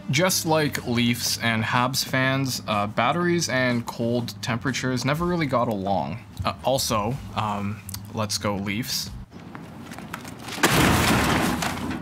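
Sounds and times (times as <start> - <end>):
computer crashing into metal dumpster: 10.4 - 12.0.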